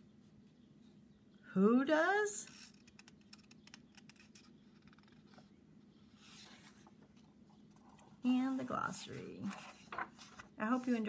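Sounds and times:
page turning paper rustle: 6.2 - 11.0.

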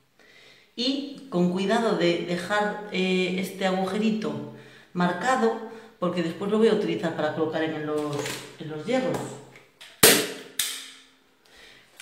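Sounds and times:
staple gun snapping: 9.8 - 11.0.

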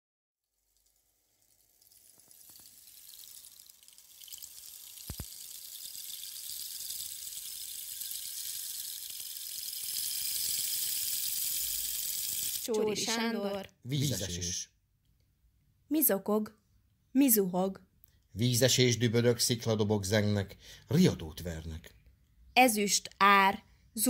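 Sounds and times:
rushing water hiss: 9.8 - 12.7.

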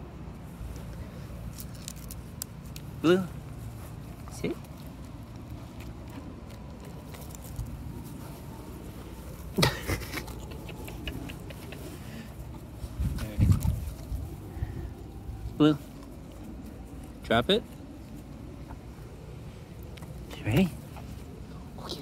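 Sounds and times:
rustling on microphone: 0.4 - 22.0.

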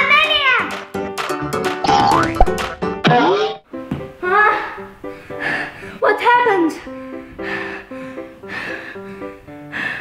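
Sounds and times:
cheerful background music: 0.0 - 10.0
cartoon boing effects: 1.8 - 3.6.

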